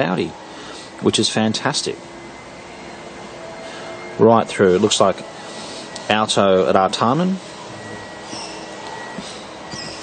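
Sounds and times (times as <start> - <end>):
faint hum: 0.0 - 10.0
faint steady tones: 0.0 - 10.0.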